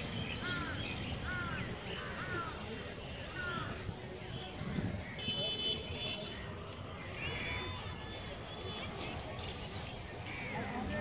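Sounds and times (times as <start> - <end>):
distant traffic hum: 0.0 - 11.0
faint voices: 0.0 - 11.0.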